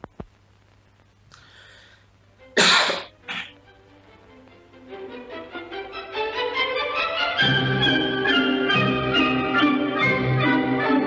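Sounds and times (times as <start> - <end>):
faint breathy sound: 1.3 - 2.2
person coughing harshly: 2.6 - 3.6.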